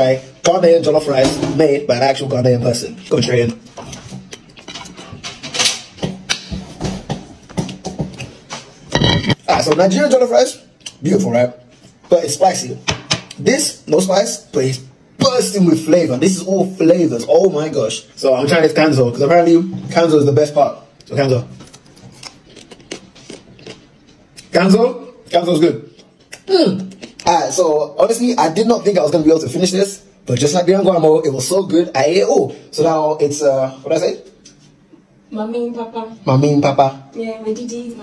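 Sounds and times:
man chewing: 21.6s - 24.5s, 26.0s - 27.3s.

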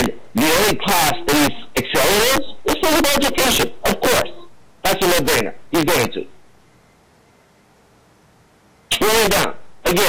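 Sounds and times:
man speaking: 0.0s - 6.4s, 8.9s - 10.0s.

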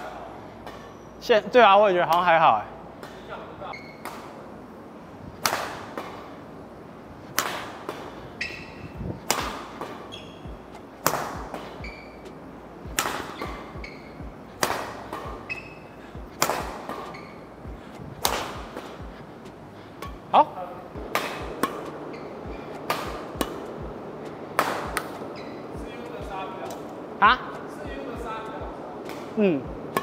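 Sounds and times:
rackets hitting shuttlecocks: 4.0s - 4.4s, 5.3s - 6.4s, 7.3s - 27.0s, 29.0s - 30.0s.

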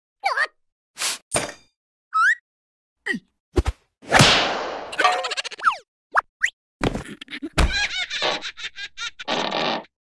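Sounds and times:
cartoon whip crack: 4.1s - 5.0s.

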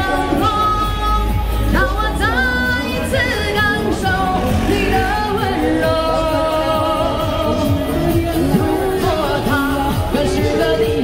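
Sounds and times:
pop backing music: 0.0s - 11.0s
woman singing into microphone: 0.0s - 11.0s.

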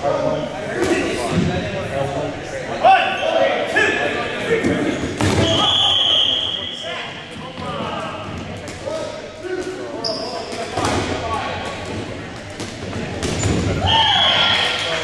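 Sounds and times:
balls bouncing off gym floor: 10.5s - 14.4s.

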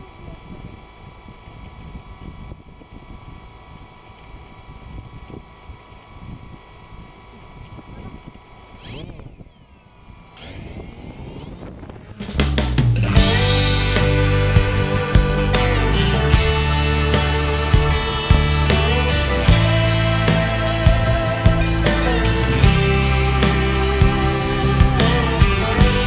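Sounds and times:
drone propellers whining: 0.0s - 26.0s
music: 12.3s - 26.0s.

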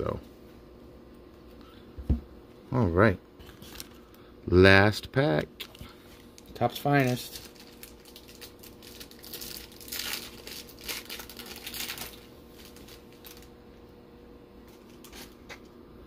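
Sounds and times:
card pack wrapper tearing: 6.3s - 13.5s, 14.9s - 15.4s.

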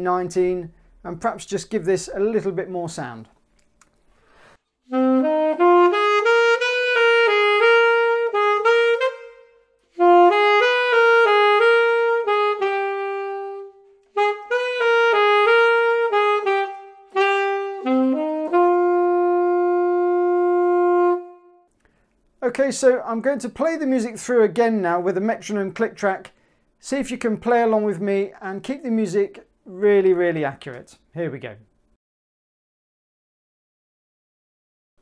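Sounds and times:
alto saxophone blues melody: 4.8s - 21.7s.

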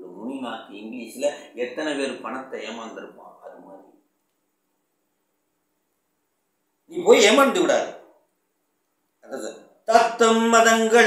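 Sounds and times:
man speaking: 0.0s - 4.0s.

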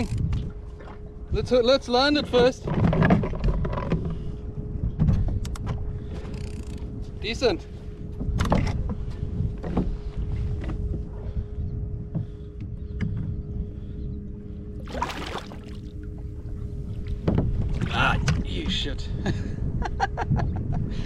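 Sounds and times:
wind on microphone: 0.0s - 1.6s, 8.0s - 21.0s
faint steady hum: 3.8s - 21.0s
fish splashing in water: 14.8s - 16.0s
water sloshing against kayak hull: 14.8s - 18.6s.

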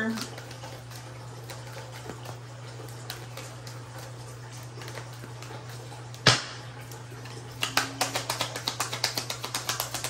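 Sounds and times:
cards being shuffled: 7.5s - 10.0s.

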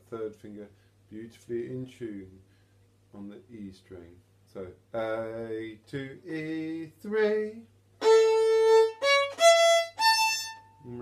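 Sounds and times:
bowed violin notes: 8.0s - 11.0s.

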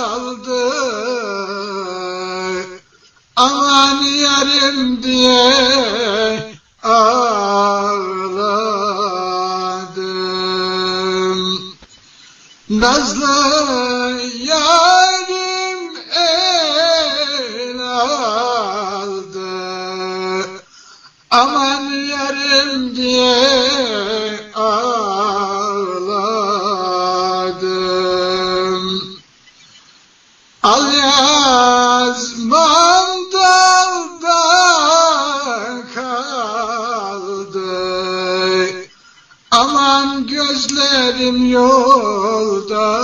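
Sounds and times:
person singing folk song: 0.0s - 12.0s, 12.6s - 29.3s, 30.6s - 43.0s.

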